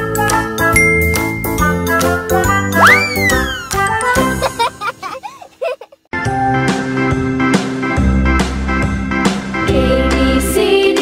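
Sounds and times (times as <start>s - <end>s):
upbeat children's jingle: 0.6s - 4.7s.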